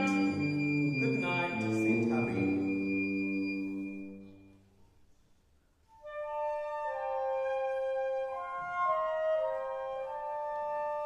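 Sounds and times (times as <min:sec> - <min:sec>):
woodwinds playing slow melody: 0:00.0 - 0:04.8, 0:05.8 - 0:11.0.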